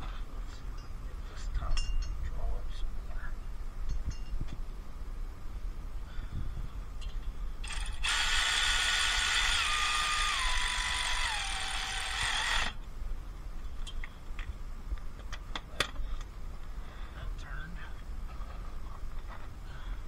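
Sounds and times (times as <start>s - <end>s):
cordless ratchet motor running: 7.6s - 12.8s.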